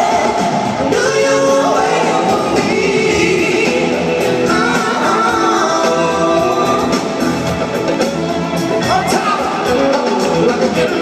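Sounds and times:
person singing: 0.0s - 7.6s, 8.7s - 11.0s
band accompaniment: 0.0s - 11.0s.

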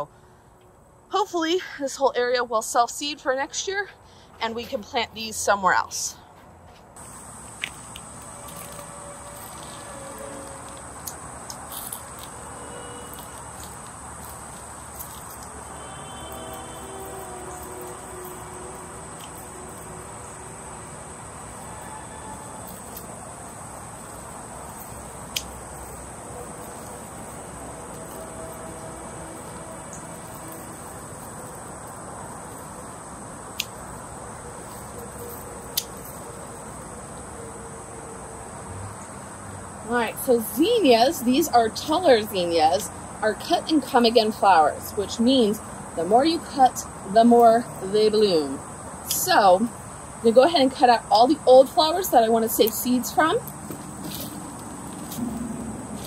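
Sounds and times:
insects trilling: 7.0s - 56.0s.

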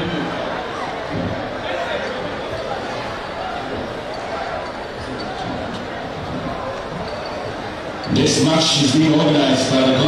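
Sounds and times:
stadium crowd chatter: 0.0s - 10.0s.

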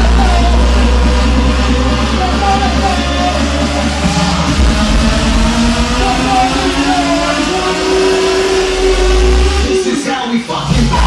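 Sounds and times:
held synth note rising in pitch: 0.0s - 10.0s
edm club music over sound system: 0.0s - 11.0s
heavy bass: 0.0s - 11.0s.

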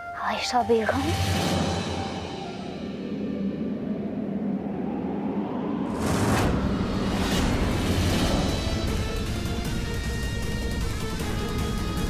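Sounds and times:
low dramatic score drone: 0.0s - 12.0s.

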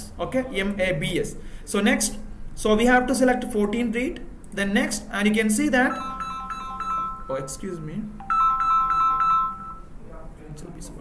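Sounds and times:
phone ringtone melody: 5.8s - 10.0s.

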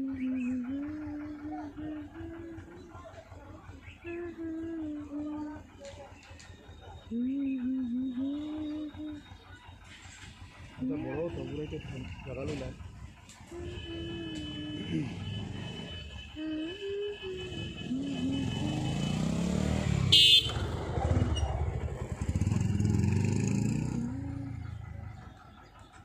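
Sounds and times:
people's voices: 0.0s - 19.8s, 20.7s - 26.0s
vehicle engines passing: 0.0s - 26.0s.

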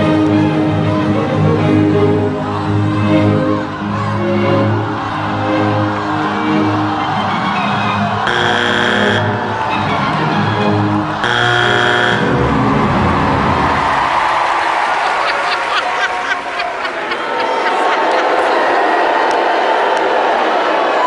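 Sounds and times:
audience noise: 0.0s - 21.0s
judge's buzzer: 8.3s - 10.0s, 11.2s - 12.4s.

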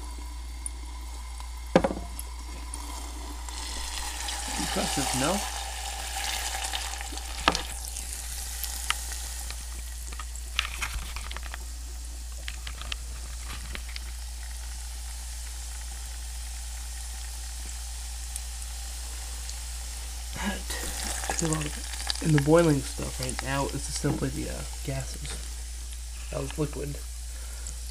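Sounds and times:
fizzing hiss: 0.0s - 27.9s.

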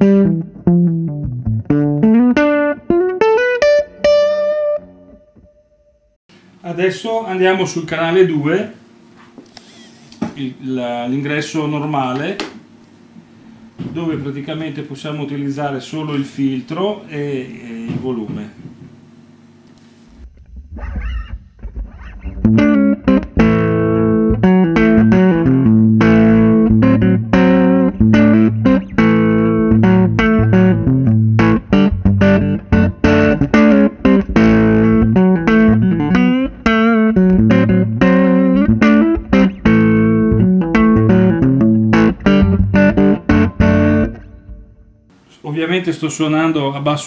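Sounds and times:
electric guitar notes and chords: 0.0s - 6.2s, 20.2s - 45.1s
amp hum: 0.0s - 47.0s.

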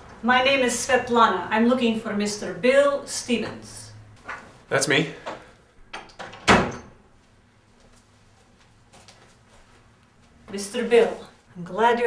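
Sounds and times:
door shutting with thud: 6.0s - 7.0s.

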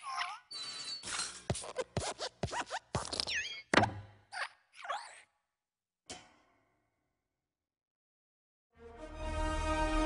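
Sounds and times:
squeaky creaks: 0.0s - 3.7s
falling squeak: 0.1s - 1.8s, 2.6s - 3.7s.

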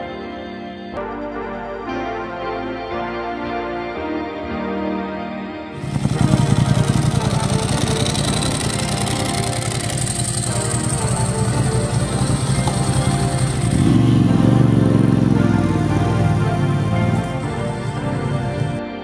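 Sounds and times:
hard rock music: 1.0s - 19.0s
motorcycle engine running: 5.8s - 18.8s.

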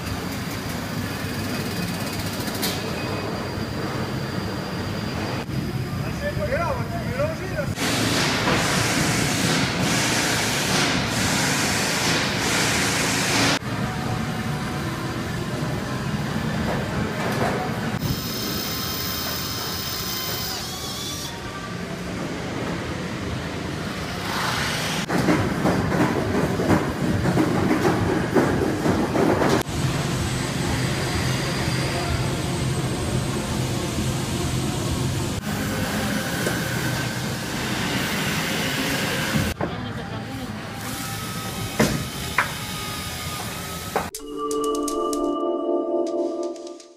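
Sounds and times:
machinery hum and hiss: 0.0s - 44.1s.

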